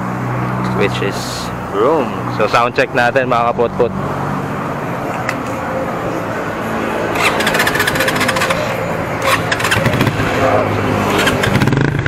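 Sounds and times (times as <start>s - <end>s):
motorcycle engine revving: 6.5s - 12.0s
exhaust pops: 11.1s - 12.0s.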